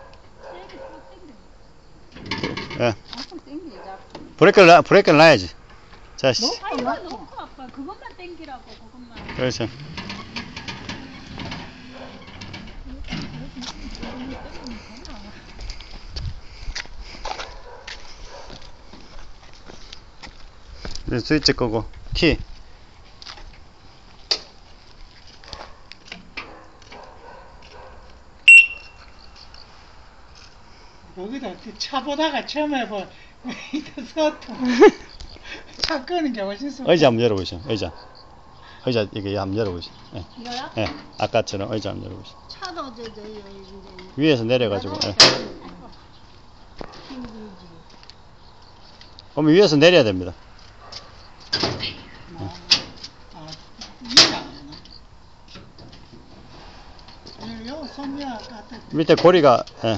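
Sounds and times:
electronic buzzer beep: 28.5s - 29.0s.

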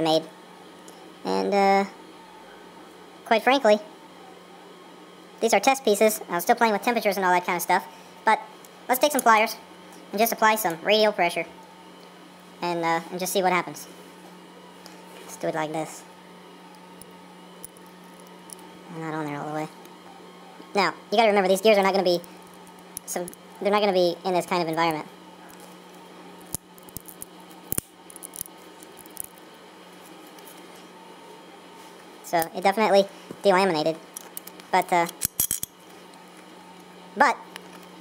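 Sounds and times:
low room hum: 0.0s - 38.0s
small clicks of gear in pliers: 26.4s - 29.4s.

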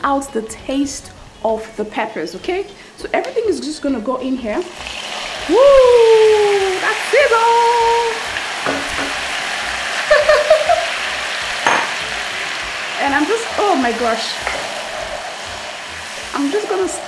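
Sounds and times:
paste sizzling in hot oil: 4.4s - 17.0s
person exclaiming: 5.5s - 6.8s.

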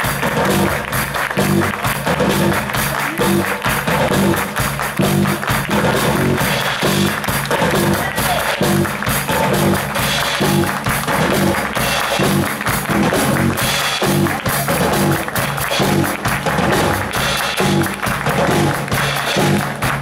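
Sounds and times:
drum kit steady beat: 0.0s - 20.0s
live band playing: 0.0s - 20.0s
repeating low riff: 0.0s - 20.0s.

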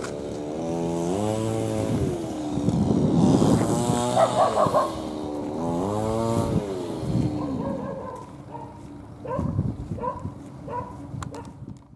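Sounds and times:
vehicle engine passing by: 0.0s - 9.0s.

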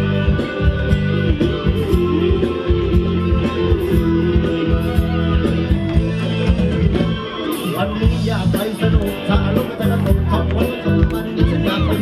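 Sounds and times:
live band dance music: 0.0s - 12.0s.

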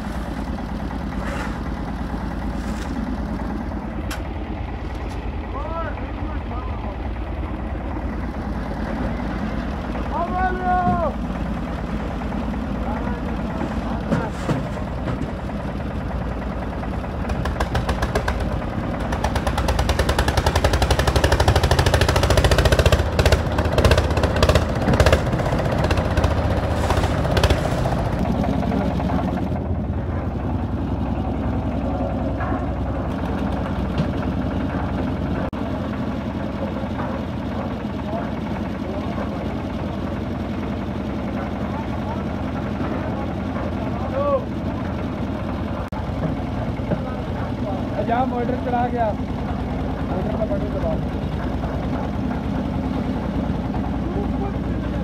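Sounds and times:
concrete mixer engine knocking: 0.1s - 55.0s.

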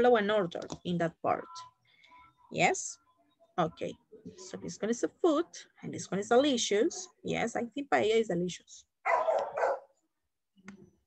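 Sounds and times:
dog barking: 9.0s - 10.0s.

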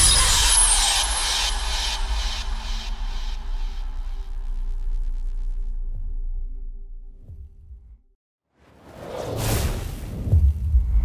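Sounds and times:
deep low rumble: 0.0s - 8.2s.

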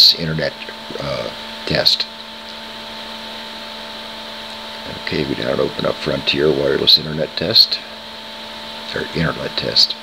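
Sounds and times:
steady machine hum with hiss: 0.0s - 10.0s.

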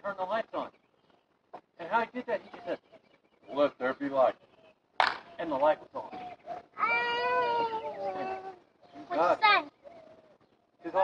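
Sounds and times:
long high drawn-out cry: 6.8s - 8.5s.

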